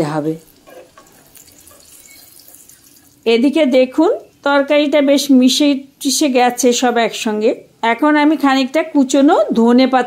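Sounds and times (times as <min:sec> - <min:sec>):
oil sizzling in a saucepan: 0:00.0 - 0:07.2.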